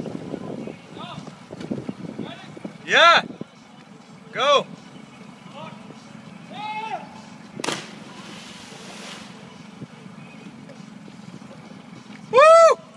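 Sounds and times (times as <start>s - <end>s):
low motor hum: 0.0s - 12.9s
person splashing into water: 7.6s - 9.4s
spray hiss: 8.1s - 9.6s.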